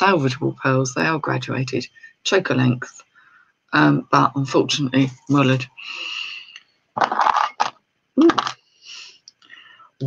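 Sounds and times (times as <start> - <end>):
jewellery rustling and knocking: 7.0 - 8.6.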